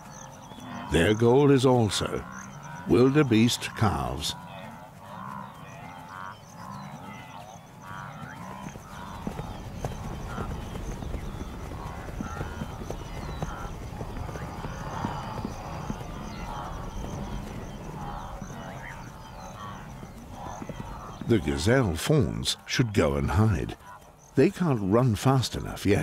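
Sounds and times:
hoofbeats drumming over ground: 0.0s - 26.0s
antelope grunting calls: 0.6s - 24.9s.

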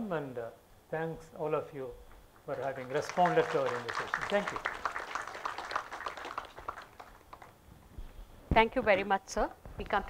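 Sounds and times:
light applause: 2.3s - 7.7s.

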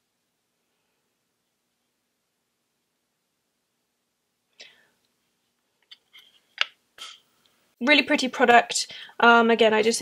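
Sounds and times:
woman breathing: 4.5s - 5.1s, 8.9s - 9.2s.

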